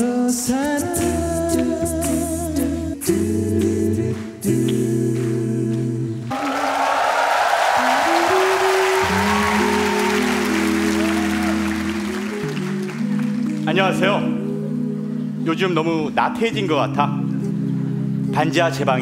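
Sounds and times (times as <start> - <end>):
man singing into microphone: 0.0 - 6.2
audience applauding: 6.3 - 13.7
sustained held chords: 6.3 - 18.2.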